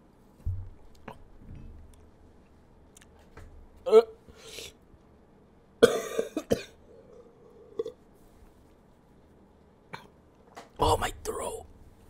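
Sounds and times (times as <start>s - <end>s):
man coughing hard: 5.8s - 6.8s.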